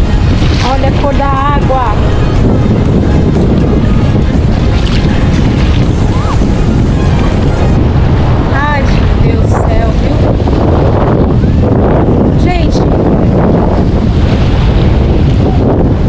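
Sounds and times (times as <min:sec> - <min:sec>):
sea washing: 0:00.0 - 0:16.0
wind buffeting microphone: 0:00.0 - 0:16.0.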